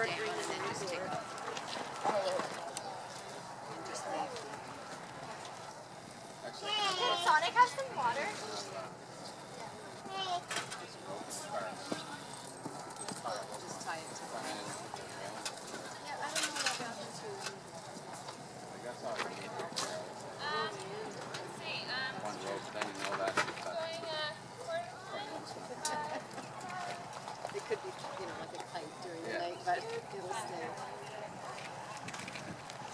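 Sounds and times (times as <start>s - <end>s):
people talking low: 0.0s - 32.9s.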